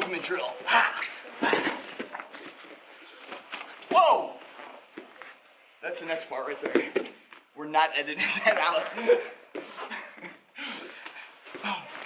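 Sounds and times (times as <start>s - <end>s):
bare feet shuffling on mats: 0.0s - 5.7s, 8.8s - 10.0s.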